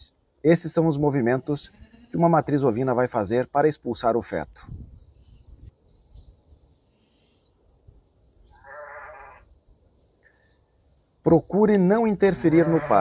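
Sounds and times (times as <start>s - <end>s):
faint low background noise: 0.0s - 13.0s
sheep bleating: 1.2s - 2.5s, 8.6s - 9.4s, 12.2s - 13.0s.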